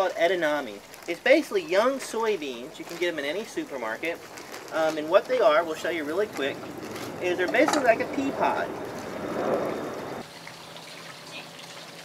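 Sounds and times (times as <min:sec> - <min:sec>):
water running in a pond: 0:00.0 - 0:12.0.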